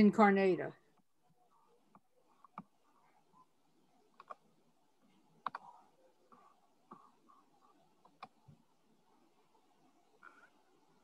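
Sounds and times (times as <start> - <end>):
computer mouse clicking: 0.9 - 3.1, 4.1 - 8.6, 10.1 - 10.7.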